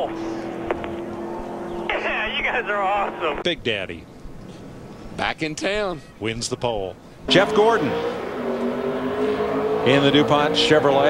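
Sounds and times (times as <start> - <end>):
race car engine droning: 0.0 - 3.4, 7.3 - 11.0.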